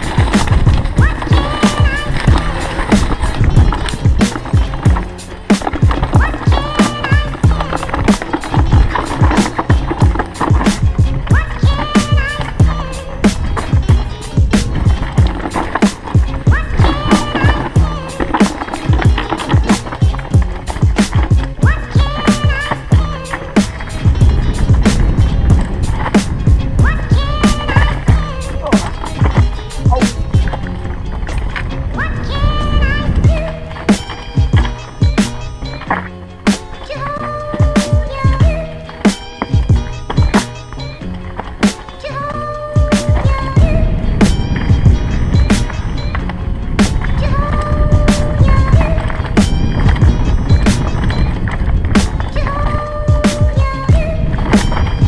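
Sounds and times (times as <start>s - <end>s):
bike knocking and rattling: 0.0s - 55.0s
bike tyre roar on dirt: 0.0s - 55.0s.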